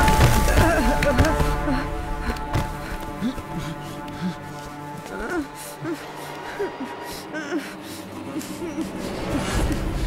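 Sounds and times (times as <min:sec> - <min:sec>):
dramatic music score: 0:00.0 - 0:10.0.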